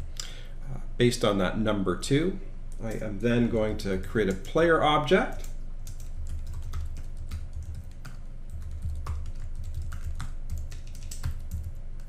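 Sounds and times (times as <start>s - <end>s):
low steady hum: 0.0s - 12.0s
typing on computer keyboard: 5.3s - 12.0s.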